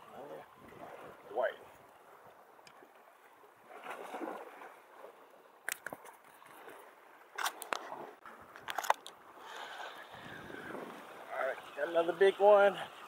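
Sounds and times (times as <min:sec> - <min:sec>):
soft steady hiss: 0:08.2 - 0:13.0.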